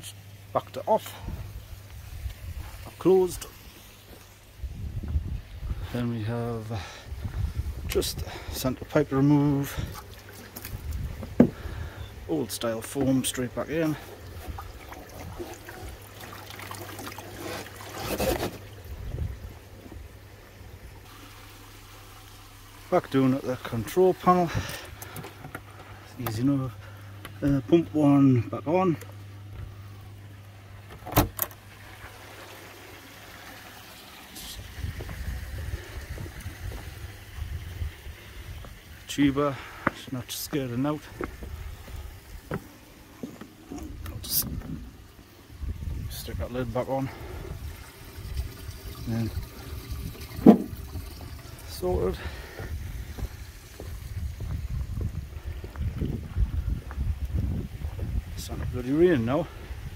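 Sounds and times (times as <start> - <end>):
wind rumble on microphone: 1.2 - 2.8, 4.6 - 6.0, 7.1 - 8.6, 10.6 - 12.0, 18.9 - 20.2, 34.5 - 39.0, 43.8 - 59.9.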